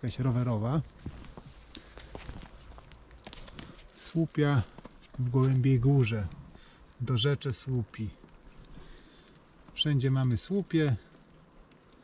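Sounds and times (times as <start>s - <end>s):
footsteps crunching in snow: 0.2s - 6.7s.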